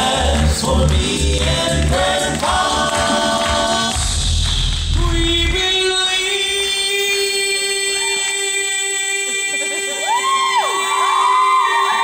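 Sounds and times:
male group singing in harmony: 0.0s - 4.0s
deep bass voice: 0.0s - 6.9s.

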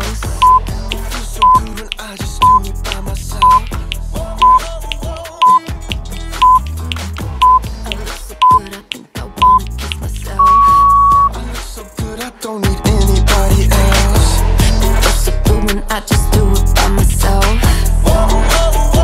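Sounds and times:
pop music with steady beat: 0.0s - 19.0s
interval timer beeps: 0.4s - 0.7s, 1.4s - 1.7s, 2.4s - 2.6s, 3.4s - 3.7s, 4.4s - 4.6s, 5.4s - 5.7s, 6.4s - 6.6s, 7.4s - 7.7s, 8.4s - 8.7s, 9.4s - 9.7s, 10.4s - 11.4s.

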